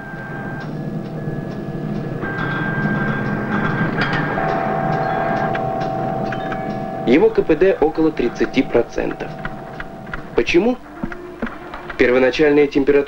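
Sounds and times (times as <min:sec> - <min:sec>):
synthesizer tones: 0:00.0 - 0:12.4
long steady tone: 0:00.0 - 0:13.0
low steady drone: 0:00.0 - 0:13.0.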